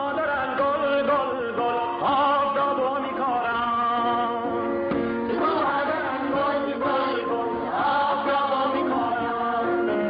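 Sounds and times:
voices singing: 0.0s - 10.0s.

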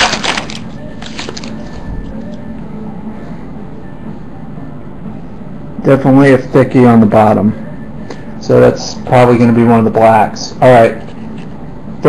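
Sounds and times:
foil pack crinkling: 0.0s - 1.7s
steady low hum: 0.0s - 12.0s.

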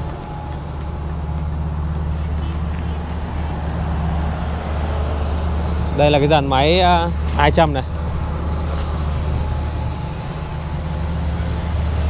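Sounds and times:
heavy diesel engine idling: 0.0s - 12.0s.

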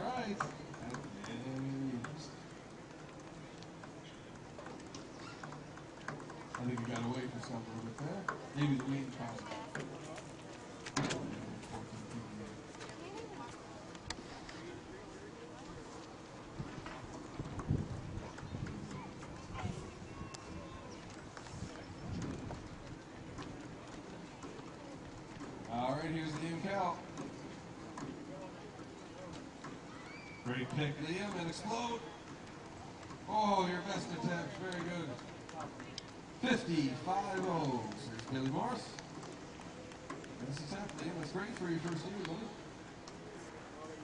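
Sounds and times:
voices calling out: 11.6s - 44.0s.

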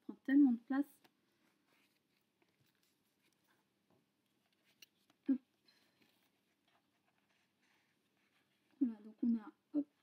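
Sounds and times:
card paper rustling: 1.0s - 8.7s.

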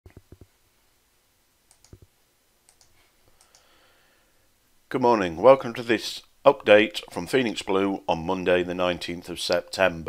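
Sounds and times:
faint small sharp clicks: 1.7s - 2.1s, 2.7s - 3.7s.

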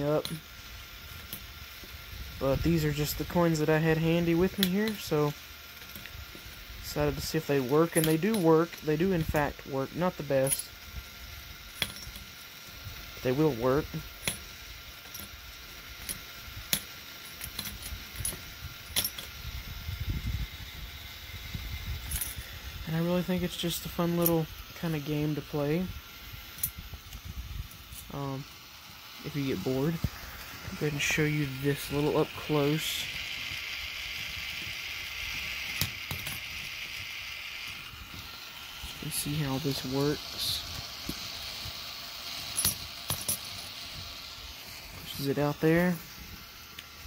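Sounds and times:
coin pusher mechanism running: 0.0s - 47.0s
coins clinking: 42.3s - 43.7s.

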